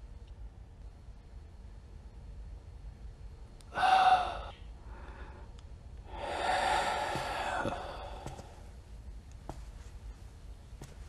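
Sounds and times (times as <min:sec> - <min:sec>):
man's breathy sigh: 0:03.7 - 0:05.4, 0:06.1 - 0:08.6.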